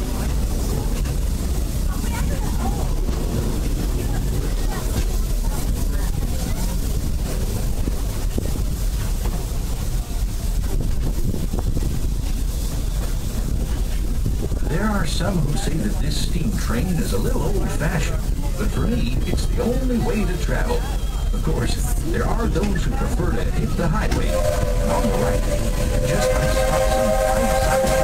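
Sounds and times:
train rumbling along: 0.0 - 28.0.

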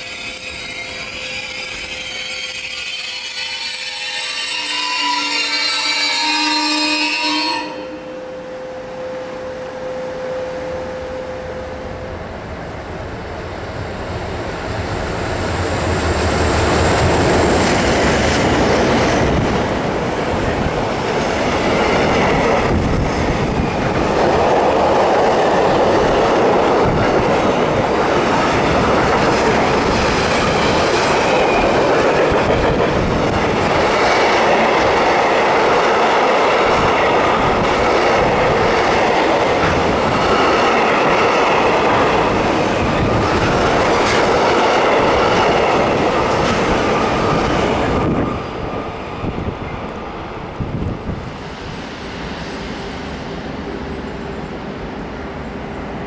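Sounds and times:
freight train wheels on rail: 0.0 - 56.0
faint high whining tones: 7.6 - 14.1.

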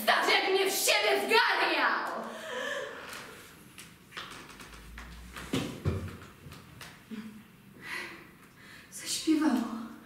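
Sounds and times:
footsteps thudding on hard floor: 5.4 - 6.2.

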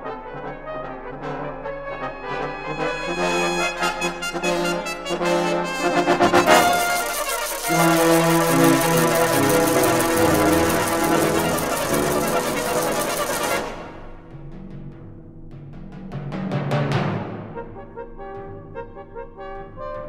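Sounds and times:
brass band playing: 0.0 - 14.3.

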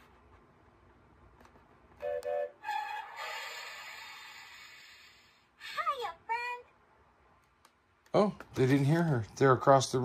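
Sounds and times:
toy train whistle: 2.0 - 4.2
toy speaker hiss: 2.7 - 5.8.

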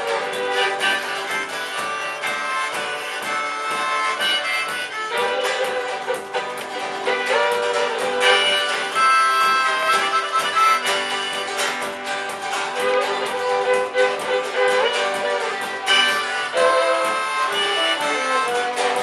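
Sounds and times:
acoustic guitar strumming: 0.0 - 19.0
fiddle: 0.0 - 19.0
frame drum beaten with stick: 0.0 - 19.0.

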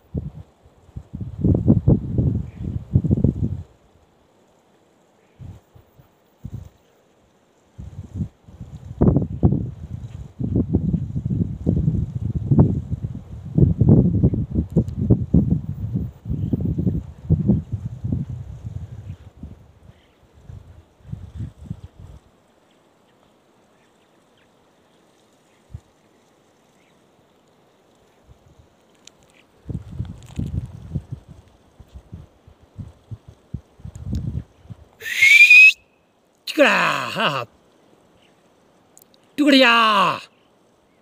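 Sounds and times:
wind buffeting microphone: 0.0 - 3.8, 7.8 - 22.3, 29.6 - 35.0
person's high-pitched cry: 35.0 - 35.7, 36.5 - 37.5, 39.4 - 40.3.

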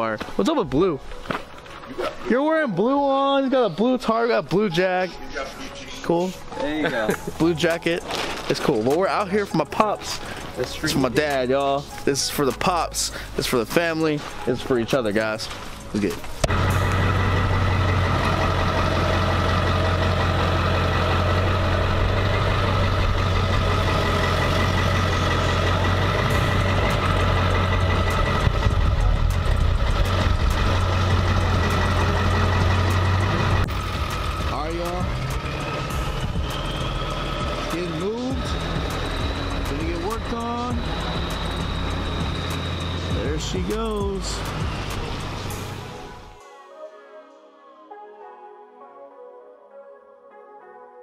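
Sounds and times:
voices: 1.8 - 18.0, 31.1 - 46.1
truck engine idling: 15.7 - 46.3.

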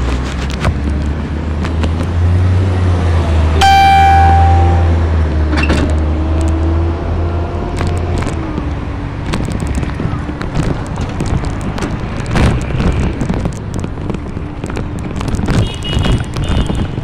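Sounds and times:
street traffic rumble: 0.0 - 17.0
car horn blast: 3.6 - 5.1.

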